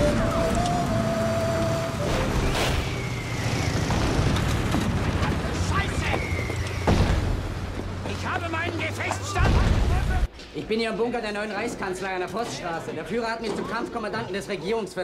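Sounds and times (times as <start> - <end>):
explosion blasts: 6.8 - 7.7, 9.4 - 10.3.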